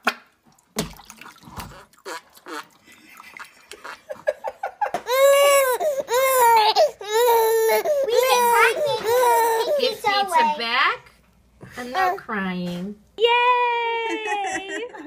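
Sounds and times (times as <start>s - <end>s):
small water sounds: 0.1s - 4.1s
baby crying: 5.0s - 10.2s.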